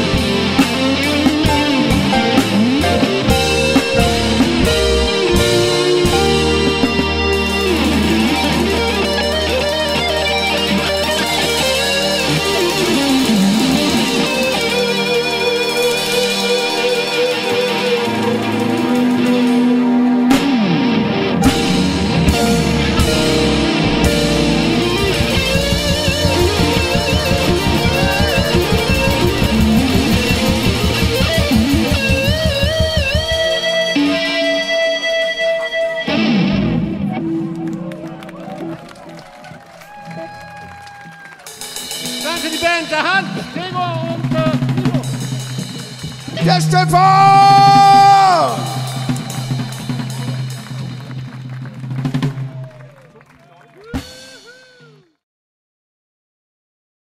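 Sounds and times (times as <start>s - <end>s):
rock band playing: 0.0s - 55.1s.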